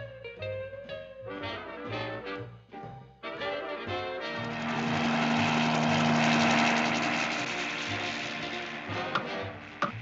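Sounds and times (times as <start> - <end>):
musical score: 0.0 - 9.8
cartoon engine drone passing by: 3.3 - 10.0.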